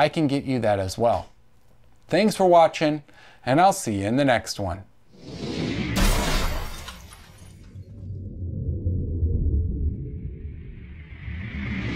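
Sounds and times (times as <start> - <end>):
low rumble: 7.6 - 11.9.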